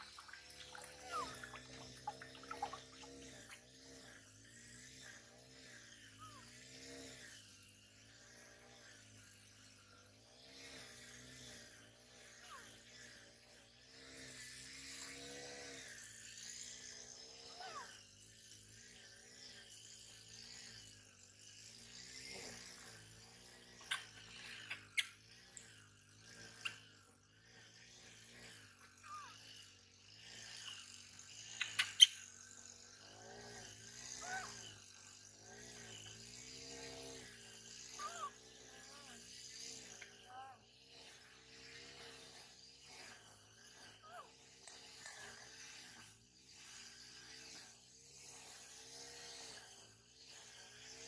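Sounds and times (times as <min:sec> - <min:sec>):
water splashing in steel basin: 0:00.0 - 0:03.1
monkey cries and squeaks: 0:00.6 - 0:03.2, 0:38.0 - 0:38.4.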